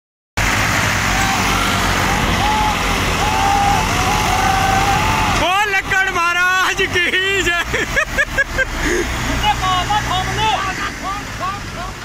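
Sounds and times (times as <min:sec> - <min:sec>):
tractor engine straining: 0:00.4 - 0:12.0
people shouting: 0:01.0 - 0:06.7.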